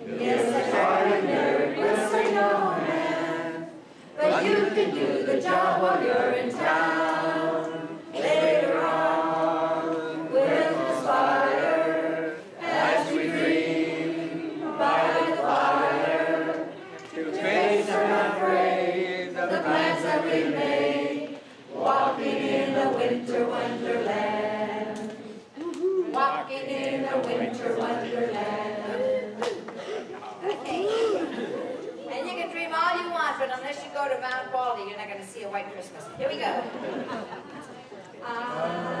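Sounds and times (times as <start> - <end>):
group of voices singing: 0.0 - 30.0, 38.2 - 39.0.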